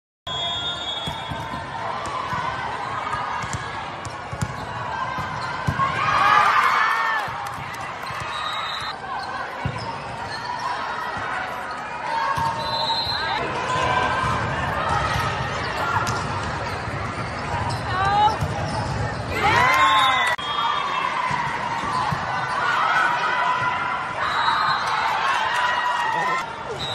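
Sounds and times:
volleyball ball contacts: 0.9 - 9.0
sneaker squeaks on court: 15.0 - 19.4.

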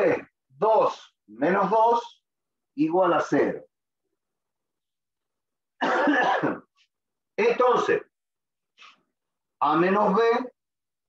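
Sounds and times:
man clearing his throat: 5.8 - 6.8.

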